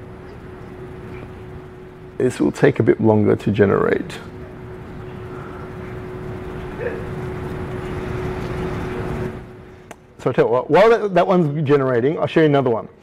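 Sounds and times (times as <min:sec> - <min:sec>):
faint steady hum: 0:00.0 - 0:13.0
steady rushing noise: 0:00.8 - 0:10.2.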